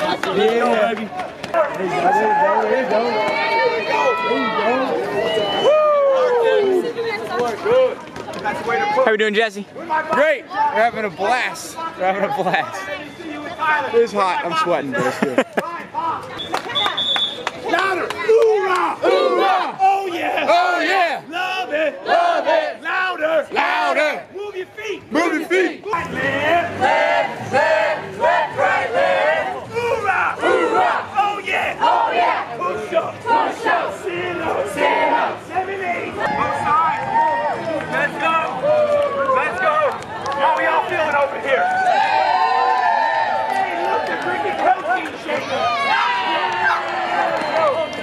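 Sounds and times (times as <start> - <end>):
crowd shouting and cheering: 0.0 - 48.0.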